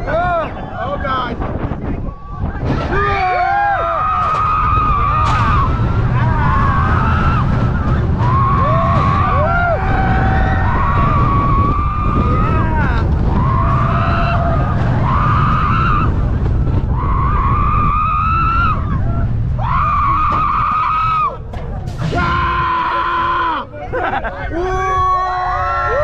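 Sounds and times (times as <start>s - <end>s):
roller coaster rumbling on track: 0.0s - 26.0s.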